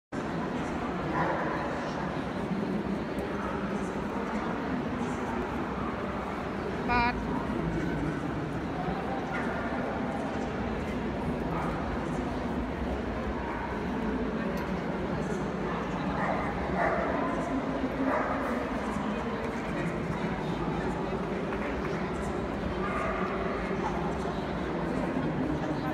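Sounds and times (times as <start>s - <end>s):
crowd chatter: 0.2s - 25.9s
dog barking: 16.2s - 17.2s.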